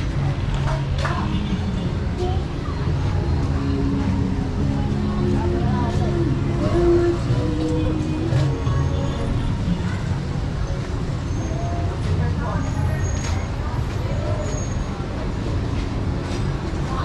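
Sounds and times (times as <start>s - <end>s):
vehicle engine humming: 0.0s - 14.3s
voices of passers-by: 0.0s - 17.0s.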